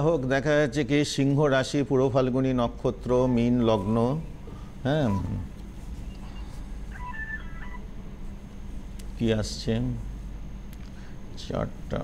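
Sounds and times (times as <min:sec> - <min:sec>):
low electrical hum: 0:00.0 - 0:12.0
faint high tones: 0:03.0 - 0:07.9.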